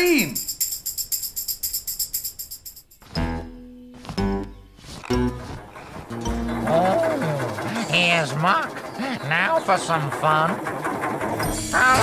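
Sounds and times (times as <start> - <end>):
tambourine jingling: 0.0 - 3.1
music with sustained notes and bass: 3.1 - 7.6.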